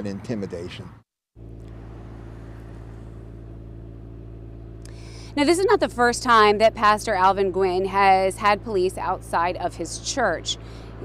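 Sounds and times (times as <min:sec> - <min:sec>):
low motor hum: 0:01.4 - 0:11.0.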